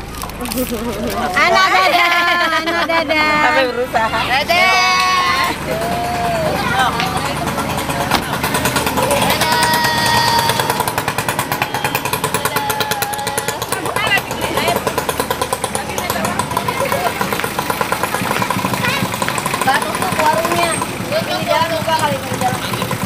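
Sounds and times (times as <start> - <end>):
car engine idling: 0.0 - 23.0
people's voices: 0.0 - 23.0.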